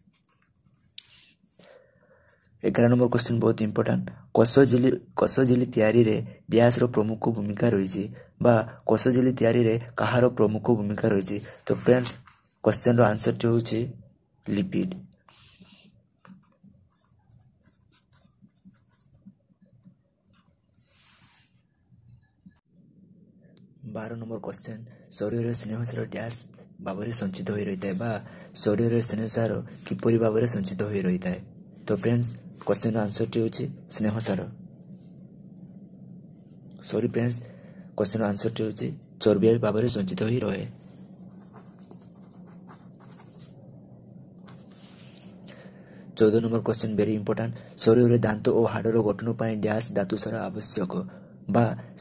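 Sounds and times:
steady low hum: 0.0s - 52.0s
pen scratching on paper: 15.3s - 21.6s, 41.2s - 43.6s.

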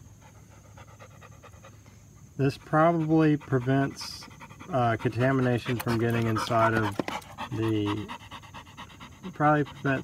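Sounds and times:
quick rhythmic panting: 0.0s - 10.0s.

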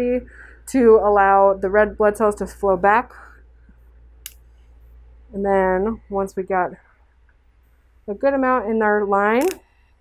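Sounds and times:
low steady hum: 0.0s - 10.0s
short breath: 0.3s - 0.6s.

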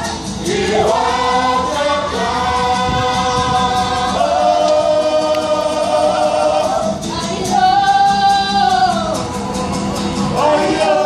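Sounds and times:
group singing with amplified voices: 0.0s - 11.0s.

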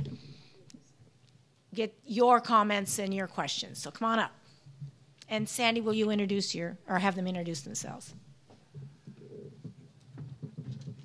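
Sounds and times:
soft knocks: 8.5s - 11.0s.

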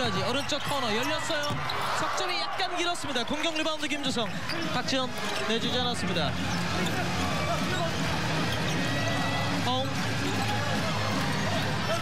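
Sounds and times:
arena crowd noise: 0.0s - 12.0s
music: 4.0s - 12.0s.

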